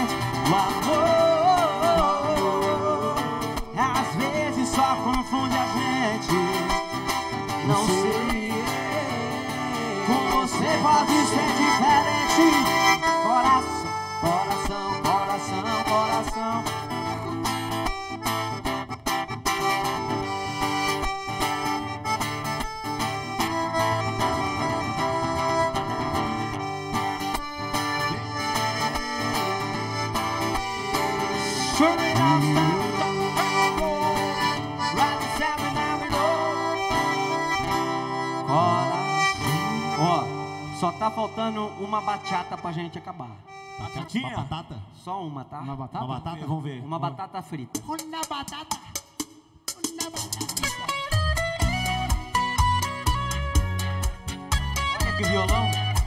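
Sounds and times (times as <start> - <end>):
accordion: 0.0 - 44.8, 47.5 - 56.0
acoustic guitar: 0.0 - 44.8, 47.5 - 56.0.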